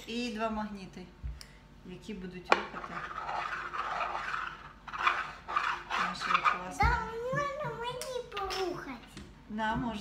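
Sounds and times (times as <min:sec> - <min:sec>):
game piece scraping across board: 0:02.9 - 0:06.6.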